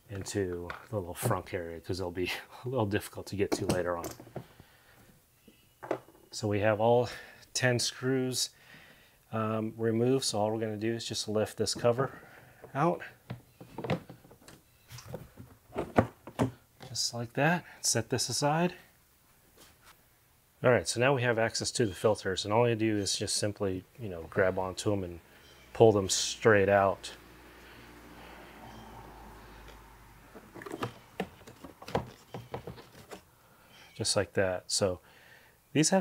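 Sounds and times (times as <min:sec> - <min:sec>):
plastic clicks and scraping rubs: 0:30.4 - 0:33.3.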